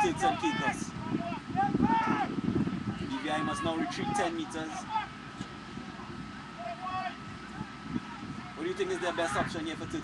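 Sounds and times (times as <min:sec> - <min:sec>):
distant voices calling: 0:00.0 - 0:10.0
steady background hiss: 0:00.0 - 0:10.0.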